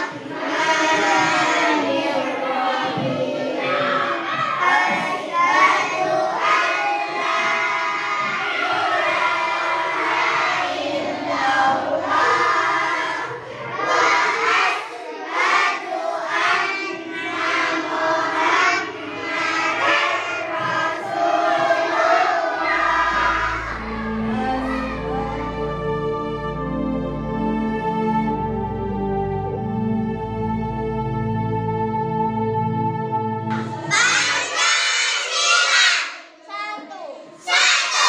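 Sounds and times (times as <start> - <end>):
children singing together: 0.0 - 32.4, 33.0 - 38.0
soft background music: 0.1 - 20.2.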